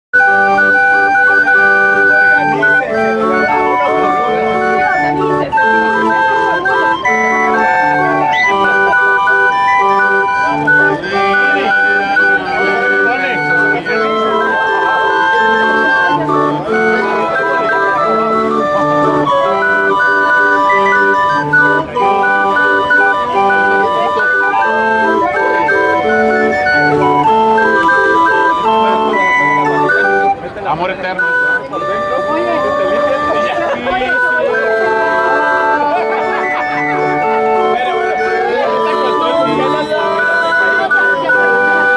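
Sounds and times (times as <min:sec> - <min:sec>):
barrel organ melody: 0:00.1 - 0:41.9.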